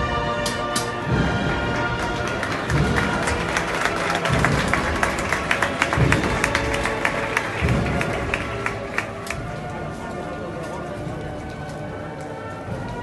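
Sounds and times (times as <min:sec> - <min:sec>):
held brass notes: 0:00.0 - 0:13.0
bass drum strokes: 0:01.0 - 0:10.2
sharp drum hits: 0:04.3 - 0:08.7.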